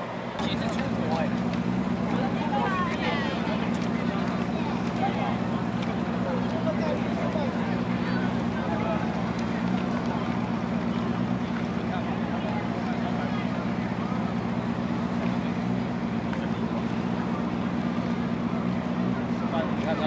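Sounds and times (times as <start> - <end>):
crowd chattering: 0.0 - 20.0
low machinery hum: 0.0 - 20.0.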